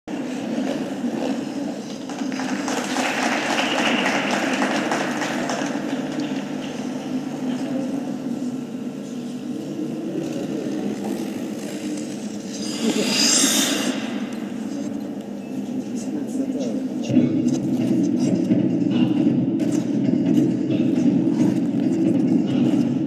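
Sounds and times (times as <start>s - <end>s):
indistinct voices: 0.1s - 23.0s
steady hum: 0.1s - 23.0s.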